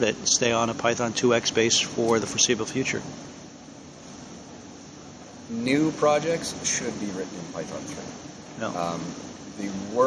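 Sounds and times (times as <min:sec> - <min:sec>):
ventilation hiss: 0:00.0 - 0:10.0.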